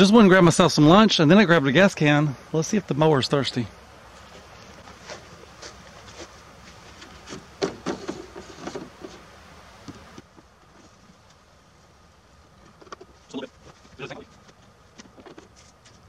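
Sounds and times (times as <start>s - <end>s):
plastic can knocks and rattles: 7.3s - 9.1s.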